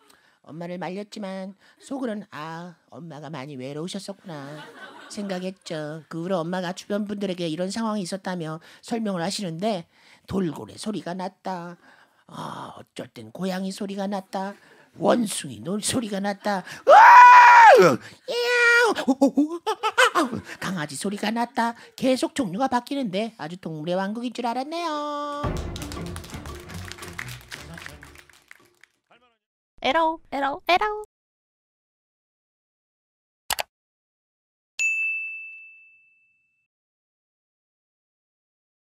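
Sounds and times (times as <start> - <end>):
person imitating animal cries: 16.9 - 19.7
high bell-like ding: 34.8 - 36.6.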